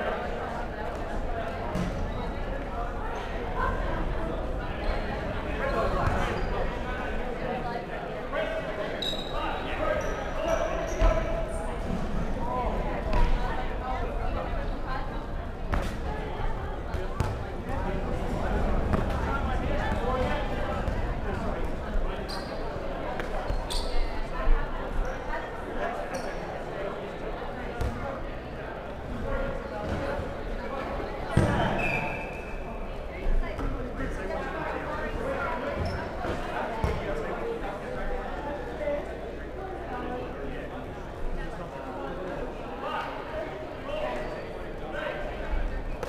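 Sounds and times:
players chattering: 0:00.0 - 0:46.0
shoes squeaking on wooden court: 0:05.7 - 0:06.6, 0:09.0 - 0:09.4, 0:10.0 - 0:11.3, 0:22.2 - 0:24.2, 0:26.1 - 0:26.4, 0:31.3 - 0:32.6, 0:35.8 - 0:37.0
dodgeball thump: 0:31.3 - 0:31.8.

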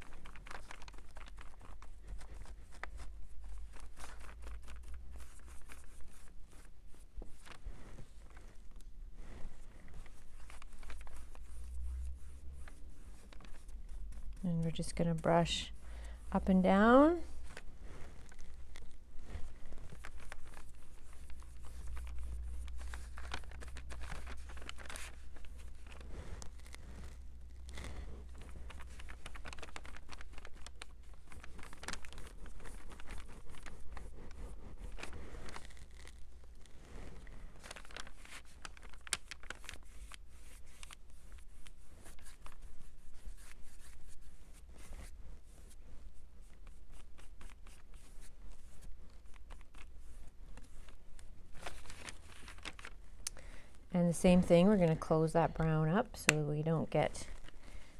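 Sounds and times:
paper rustling: 0:00.0 - 0:16.3, 0:16.9 - 0:53.6
soft scratchy brush strokes: 0:00.0 - 0:53.0, 0:54.0 - 0:57.9.

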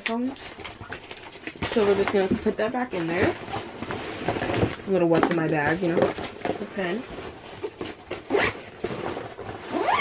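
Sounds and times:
backpack zipper being pulled: 0:08.3 - 0:08.6, 0:09.7 - 0:10.0.

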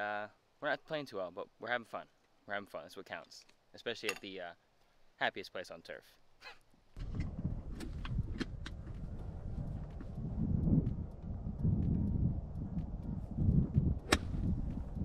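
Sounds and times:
wind rumble on microphone: 0:07.0 - 0:15.0
golf club striking ball: 0:14.0 - 0:14.5.

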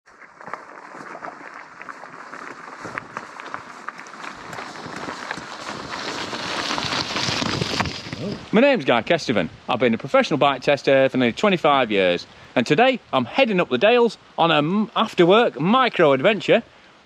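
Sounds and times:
bike tyres crunching over gravel: 0:00.1 - 0:08.8
pebbles clicking: 0:00.4 - 0:08.4.

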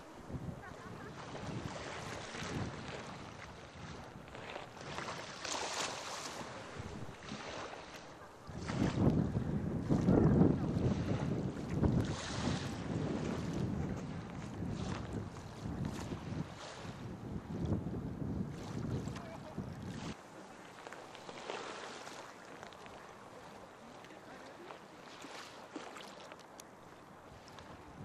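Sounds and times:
wind buffeting microphone: 0:00.0 - 0:20.2, 0:27.2 - 0:28.0
small waves on shore: 0:00.0 - 0:28.0.

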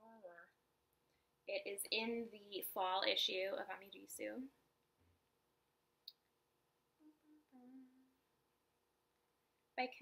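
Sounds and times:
woman humming softly: 0:07.0 - 0:08.2.

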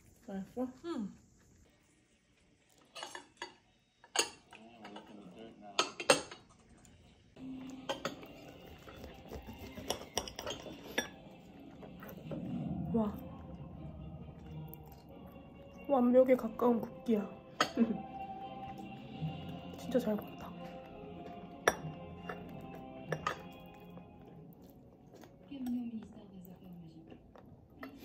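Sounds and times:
cutlery scraping on a plate: 0:02.8 - 0:05.2, 0:07.8 - 0:11.2.

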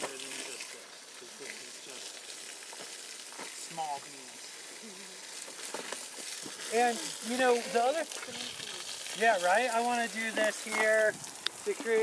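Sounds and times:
mulch rustling and crackling: 0:00.0 - 0:12.0.

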